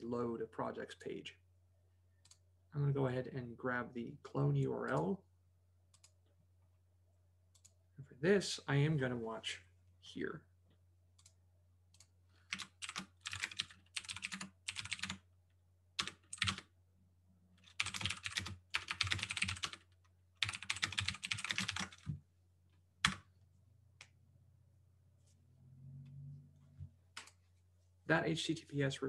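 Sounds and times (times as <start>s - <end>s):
typing on computer keyboard: 12.0s - 15.2s, 16.0s - 16.6s, 17.6s - 22.1s.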